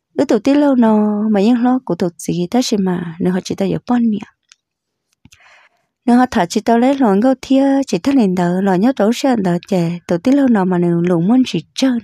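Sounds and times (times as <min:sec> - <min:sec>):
narrator speaking: 0:00.2 - 0:04.3, 0:06.1 - 0:12.0.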